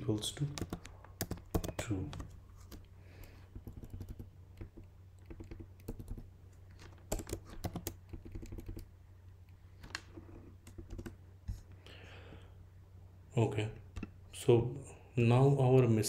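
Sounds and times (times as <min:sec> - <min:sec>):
computer keyboard key clicks: 0:03.5 - 0:06.2, 0:06.8 - 0:08.9.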